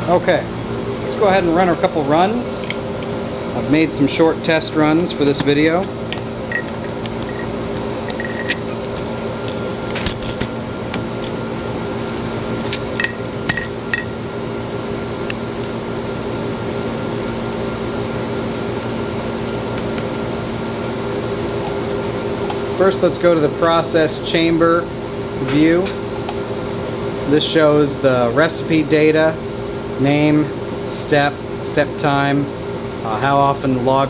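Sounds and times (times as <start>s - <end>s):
equipment hum and fan noise: 0.0s - 34.0s.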